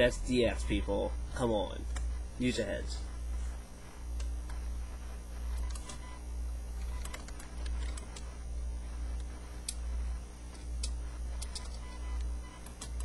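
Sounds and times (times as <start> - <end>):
low pulsing hum: 0.0 - 13.0.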